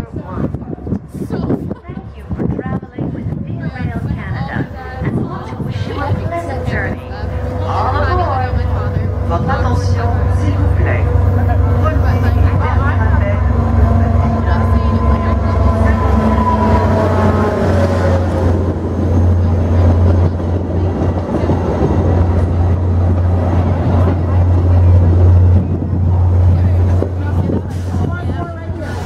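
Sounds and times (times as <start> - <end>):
diesel locomotive engine rumble: 0.0 - 29.0
train coaches rolling on rails: 2.2 - 29.0.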